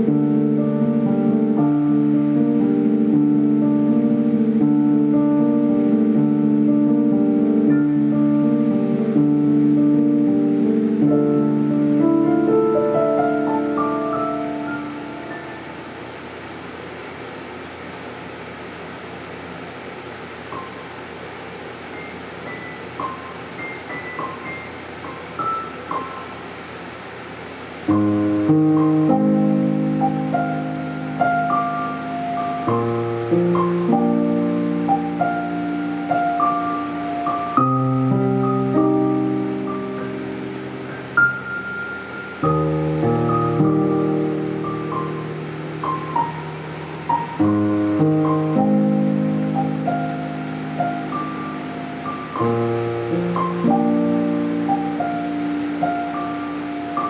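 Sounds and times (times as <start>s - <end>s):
digital piano playing: 0.0s - 18.0s, 20.3s - 57.0s
fan hum: 0.0s - 57.0s.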